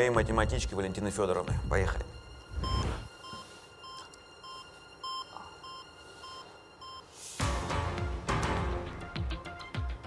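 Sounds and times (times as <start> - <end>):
heart-rate monitor beeps: 1.5 - 7.0.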